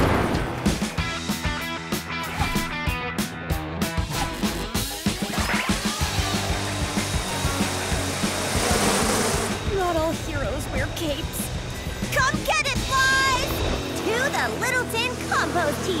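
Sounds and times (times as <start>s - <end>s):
cartoon background music: 0.0s - 16.0s
dense rushing noise: 6.5s - 10.0s.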